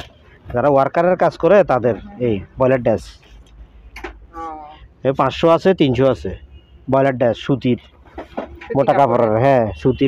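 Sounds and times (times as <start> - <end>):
person talking: 8.6 - 9.6.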